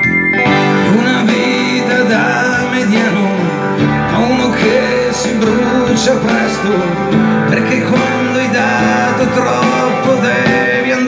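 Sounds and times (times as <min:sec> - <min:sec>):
guitar melody: 0:00.0 - 0:11.0
keyboard chords: 0:00.0 - 0:11.0
pop-rock backing track: 0:00.0 - 0:11.0.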